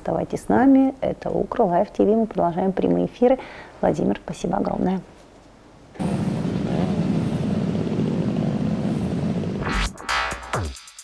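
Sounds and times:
pulsing mechanical drone: 6.0 - 10.0
rising whoosh: 6.0 - 10.1.

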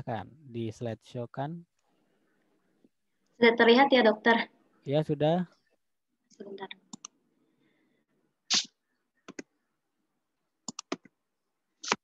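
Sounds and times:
sharp clicks in pairs: 10.6 - 11.2.

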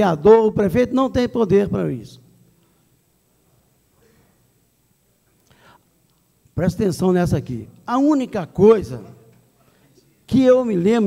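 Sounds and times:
soft breath: 5.4 - 6.0.

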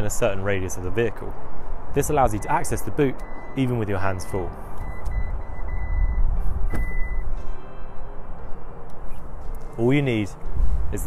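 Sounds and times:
high warning beeps: 3.2 - 7.3
wind rumble on microphone: 4.8 - 7.2, 10.4 - 11.0
tailgate click: 6.6 - 7.2.

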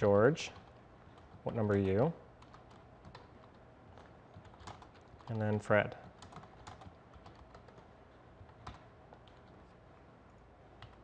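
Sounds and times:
faint keyboard keystrokes: 0.6 - 9.8, 10.8 - 11.0.

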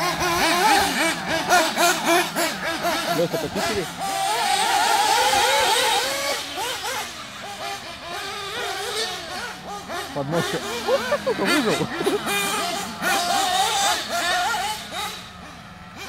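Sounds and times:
high-pitched full-throttle engine note: 0.0 - 16.0
model car engines revving: 0.0 - 16.0.

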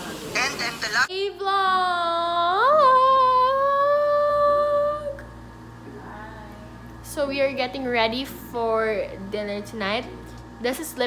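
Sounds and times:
woman singing a long note: 1.1 - 5.3.

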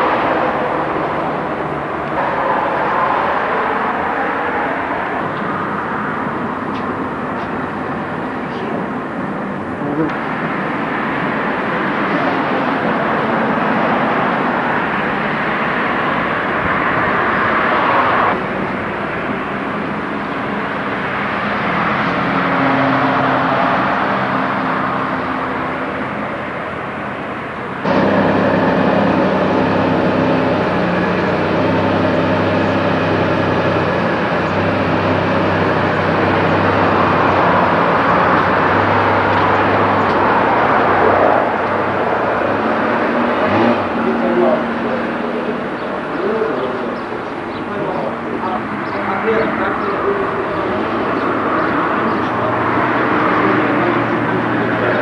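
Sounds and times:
car engine running: 24.9 - 55.0.

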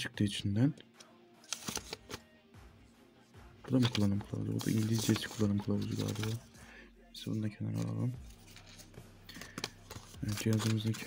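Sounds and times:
faint background music: 0.0 - 11.0
paper rustling: 1.5 - 2.2, 3.7 - 6.5, 7.7 - 11.0.

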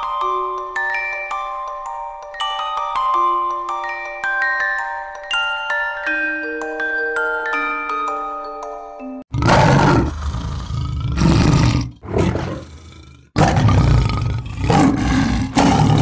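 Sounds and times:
chiming bell-like notes: 0.0 - 9.3
loud roar: 9.3 - 16.0.

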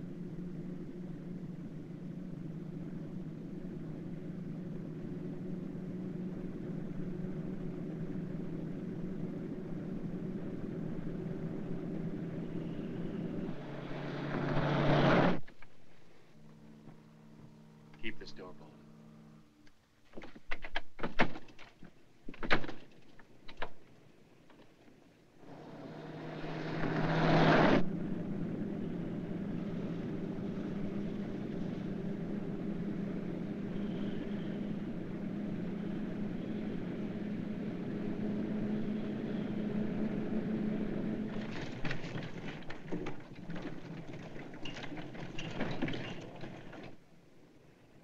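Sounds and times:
car engine droning: 0.0 - 19.6, 24.1 - 47.1
road noise: 0.0 - 20.0, 21.8 - 48.0
clattering knocks: 41.4 - 47.0.

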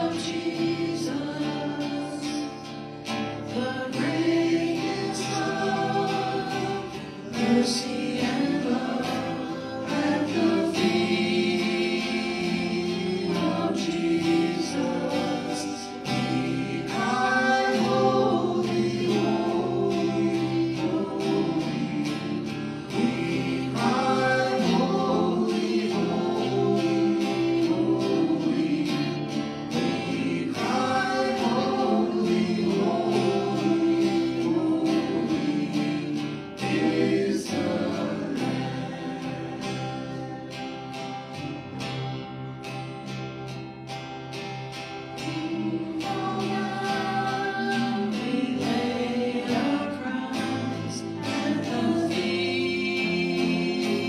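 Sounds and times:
acoustic guitar: 0.0 - 54.0
voices singing gospel melody: 0.0 - 54.0.

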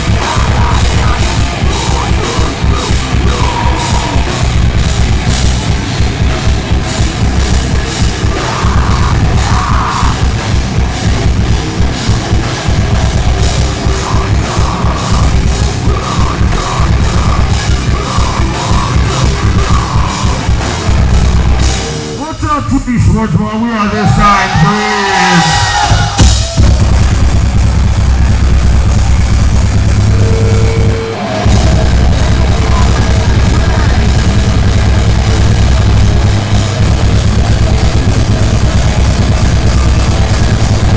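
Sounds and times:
electric guitars: 0.0 - 22.3, 23.3 - 40.9
heavy rock band playing: 0.0 - 40.9
pounding bass drum beats: 0.0 - 40.9
cymbals: 24.0 - 40.9.

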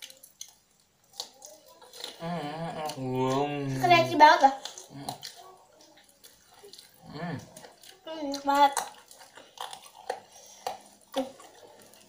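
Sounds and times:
wet mouth smacks chewing: 4.6 - 12.0.

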